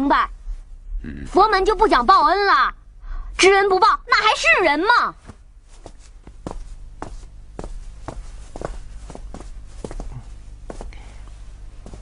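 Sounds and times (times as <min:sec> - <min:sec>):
footsteps walking: 0:05.1 - 0:12.0.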